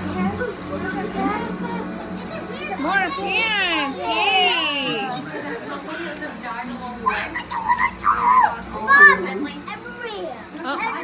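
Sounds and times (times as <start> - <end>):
children and adults chattering: 0.0 - 11.0
children squealing: 7.1 - 9.2.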